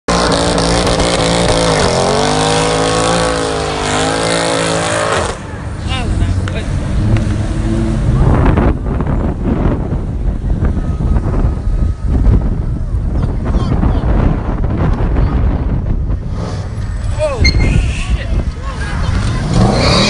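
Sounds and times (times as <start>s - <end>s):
car engine at high revs: 0.1s - 9.9s
voices: 16.9s - 20.0s.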